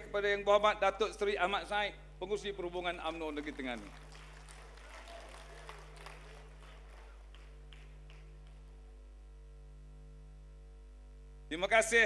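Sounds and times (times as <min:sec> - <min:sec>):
steady electrical hum: 0:00.0 - 0:12.0
audience applause: 0:03.0 - 0:08.6.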